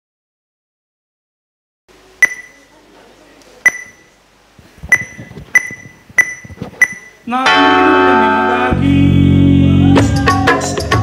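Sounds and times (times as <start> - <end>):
sharp ringing taps: 4.9 - 7.2.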